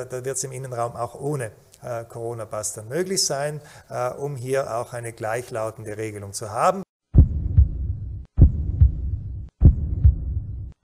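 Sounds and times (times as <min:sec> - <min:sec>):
deep heartbeat-like thumps: 0:07.1 - 0:10.8
low hum: 0:07.2 - 0:10.8.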